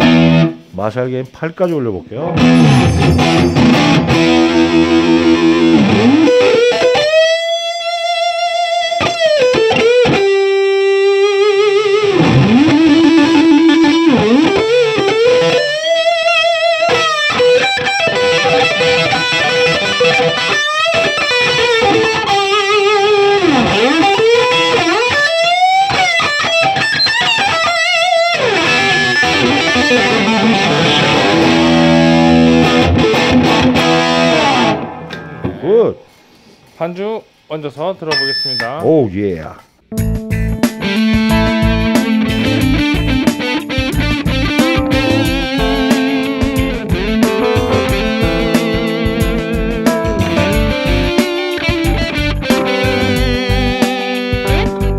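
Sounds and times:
distorted electric guitar lead: 0.0s - 0.7s, 2.2s - 35.8s, 39.9s - 54.9s.

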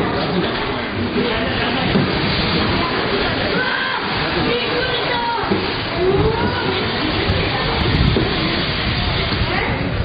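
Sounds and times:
crowd hubbub: 0.0s - 10.0s.

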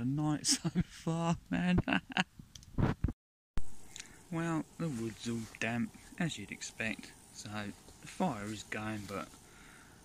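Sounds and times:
man laughing: 0.4s - 2.3s.

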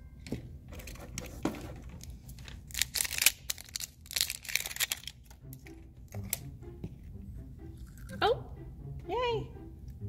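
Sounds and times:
thin plastic crinkling: 2.0s - 5.4s.

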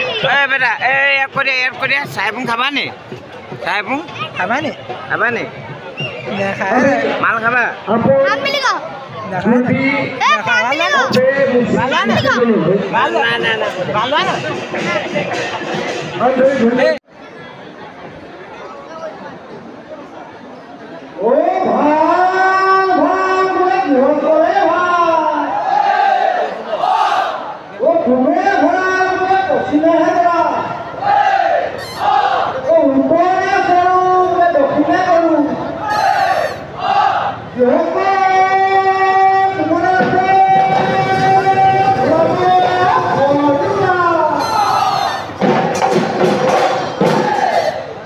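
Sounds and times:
men talking loudly: 0.0s - 17.0s, 21.1s - 47.6s
faint crowd chatter: 0.0s - 48.0s
dhol drumming: 0.4s - 5.8s, 13.0s - 16.6s, 42.6s - 47.4s
men shouting together: 35.8s - 37.4s, 44.1s - 45.4s.

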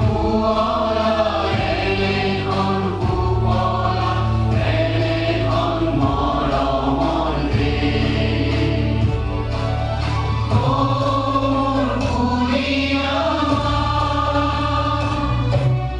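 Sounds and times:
crowd singing in chorus: 0.0s - 15.9s
instrumental backing: 0.0s - 15.9s.

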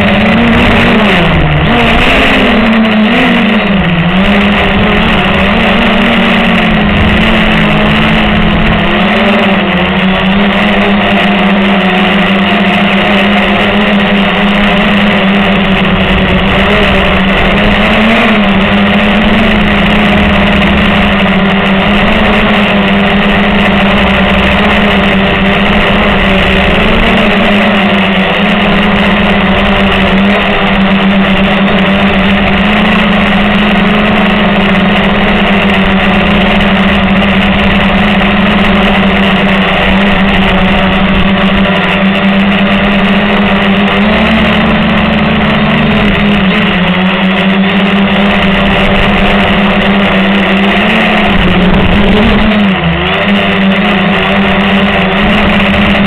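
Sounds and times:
quadcopter propellers buzzing: 0.0s - 56.0s.

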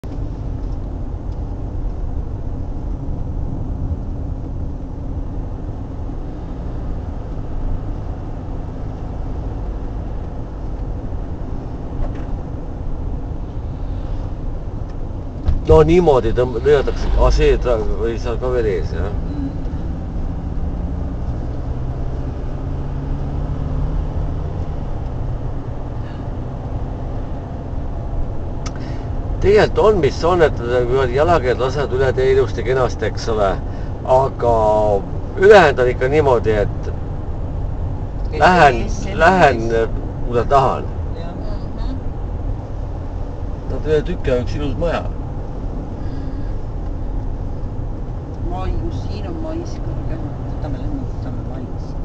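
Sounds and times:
car engine and tyre noise: 0.0s - 52.0s.

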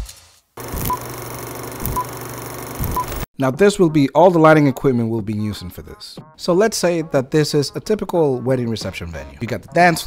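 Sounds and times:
film projector crackle: 0.6s - 3.2s.

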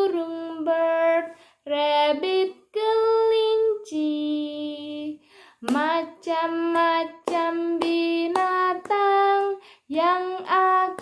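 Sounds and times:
woman singing children's song: 0.0s - 11.0s.

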